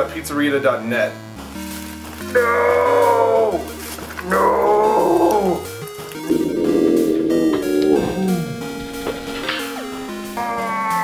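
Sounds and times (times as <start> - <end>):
man wailing no: 2.4 - 3.6, 4.3 - 5.6.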